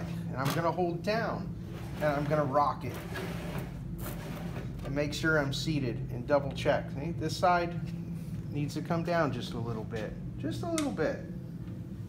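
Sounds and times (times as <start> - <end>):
metal strip scraping in roller: 1.7 - 4.9.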